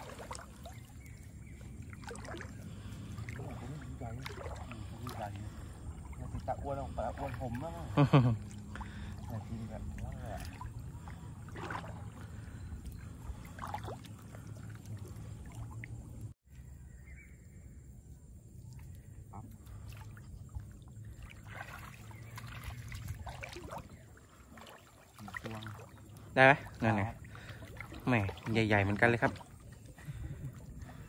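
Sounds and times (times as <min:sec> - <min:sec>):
water sloshing around waders: 0:00.0 - 0:16.4, 0:18.4 - 0:31.0.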